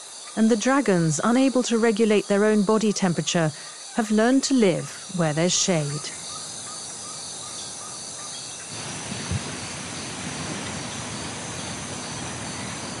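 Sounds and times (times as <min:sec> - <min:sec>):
insect or bird chirps: 0:00.0 - 0:13.0
steady rushing noise: 0:08.6 - 0:13.0
short low thump: 0:09.1 - 0:09.7.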